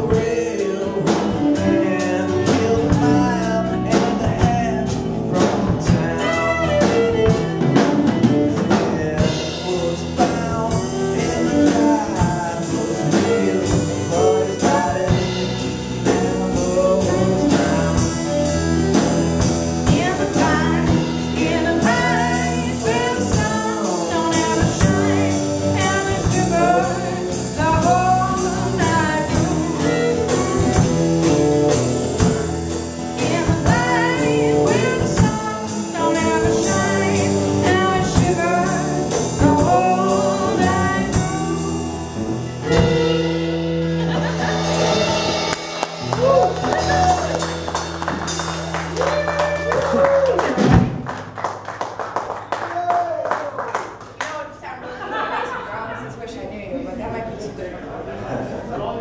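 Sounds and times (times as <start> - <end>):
fiddle melody: 0.0 - 49.7
electric bass: 0.0 - 52.0
acoustic guitar: 0.0 - 52.5
drum kit beat: 0.0 - 54.5.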